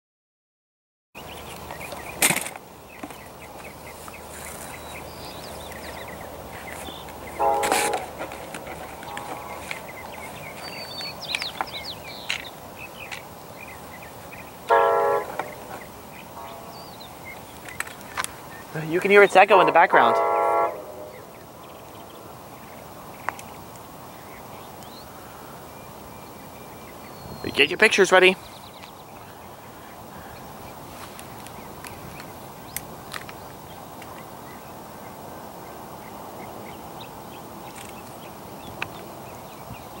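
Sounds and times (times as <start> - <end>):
faint echo of train horn: 7.4 - 8.3, 9.0 - 10.0, 14.7 - 15.8, 16.4 - 17.0, 19.5 - 21.4
distant train horn blasts: 7.4 - 10.1, 14.7 - 17.0, 19.2 - 21.4.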